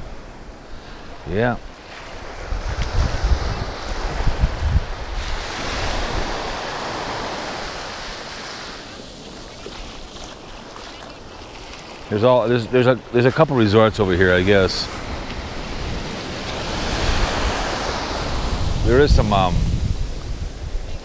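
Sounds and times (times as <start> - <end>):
small waves breaking on beach: 0.0 - 21.0
wind buffeting microphone: 1.2 - 21.0.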